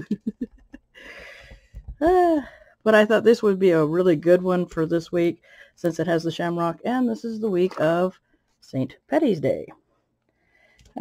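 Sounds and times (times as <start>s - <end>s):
woman laughing: 0.0s - 2.4s
light low taps: 1.4s - 2.2s.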